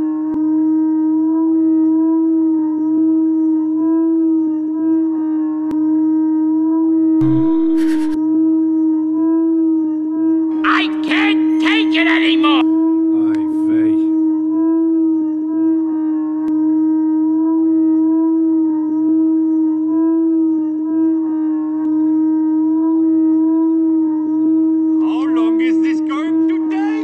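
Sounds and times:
cartoon voices: 10.6 - 12.6, 25.0 - 27.0.

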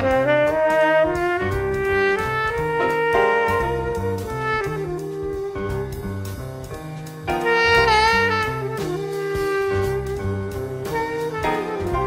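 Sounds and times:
backing track with bass line: 0.0 - 12.0
tenor saxophone playing jazz: 0.0 - 12.0.

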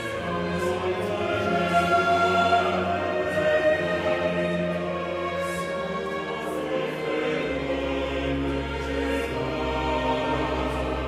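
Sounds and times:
baroque orchestra strings: 0.0 - 11.0
choir singing: 0.0 - 11.0.

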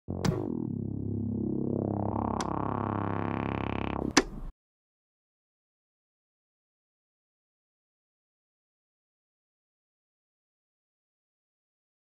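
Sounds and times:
sustained synthesizer chord: 0.1 - 4.2
sharp click: 4.1 - 4.5.

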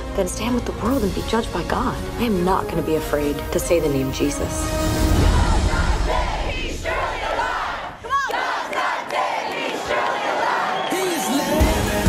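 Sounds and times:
crowd shouting and cheering: 5.0 - 12.0.

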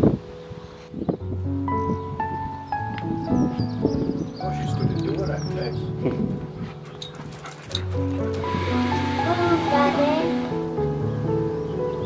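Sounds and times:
background song: 6.2 - 12.0.

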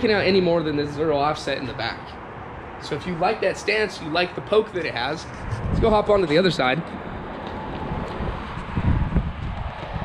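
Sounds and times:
faint outdoor background noise: 0.0 - 10.0
wind buffeting microphone: 4.5 - 10.0.

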